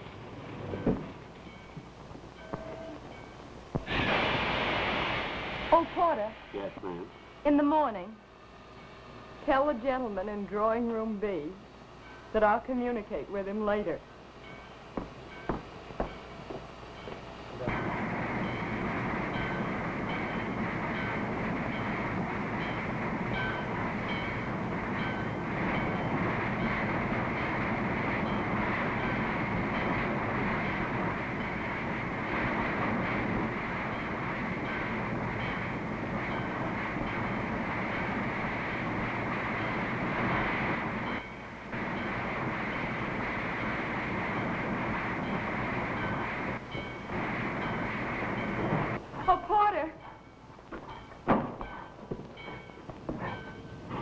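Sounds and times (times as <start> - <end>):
passenger train rushing: 0.0 - 51.2.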